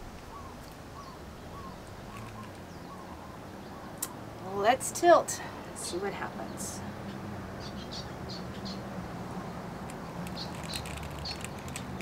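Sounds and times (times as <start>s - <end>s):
small birds chirping: 0.1s - 4.2s, 5.8s - 12.0s.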